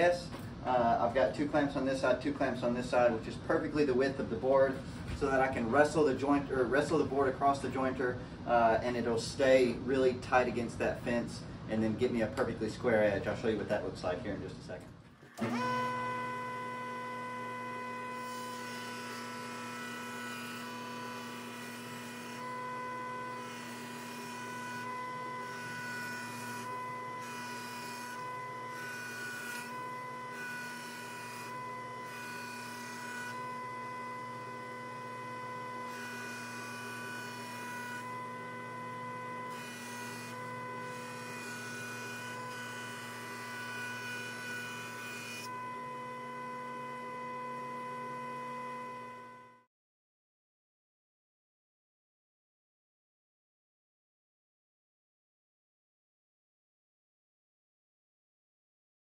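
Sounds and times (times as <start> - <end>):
jointer humming with high whine: 0.0 - 49.7.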